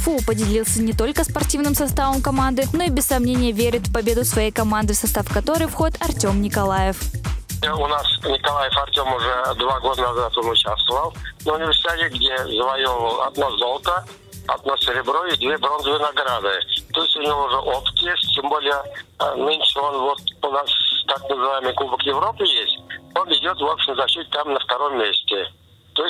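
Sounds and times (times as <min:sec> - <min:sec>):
background music: 0:00.0 - 0:25.0
man speaking over telephone: 0:07.6 - 0:26.0.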